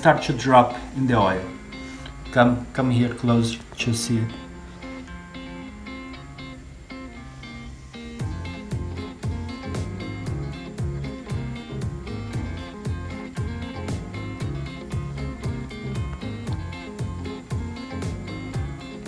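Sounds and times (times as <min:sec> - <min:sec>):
music with plucked notes: 0:00.0 - 0:19.0
steady beat and bass line: 0:04.1 - 0:19.0.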